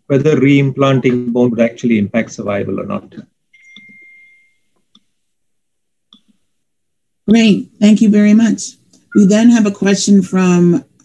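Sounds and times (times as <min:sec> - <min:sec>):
faint high electronic tone: 0:03.5 - 0:04.8
faint electronic blip: 0:03.6 - 0:04.5.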